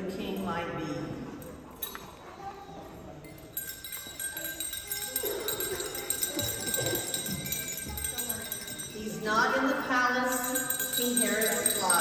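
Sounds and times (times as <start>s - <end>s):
small bells jingling: 1.4s - 12.0s.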